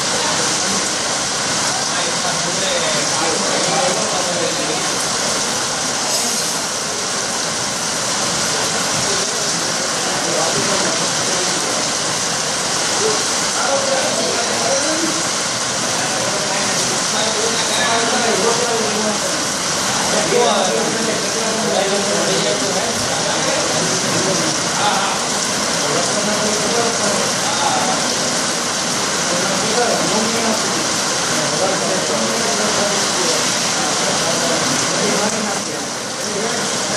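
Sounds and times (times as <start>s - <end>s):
heavy rain on wet street: 0.0s - 36.9s.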